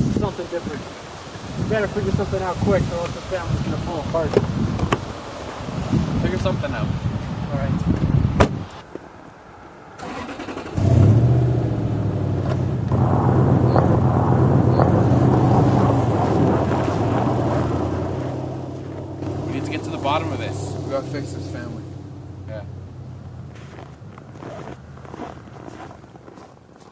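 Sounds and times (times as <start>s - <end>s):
car engine starting and running: 10.0s - 25.1s.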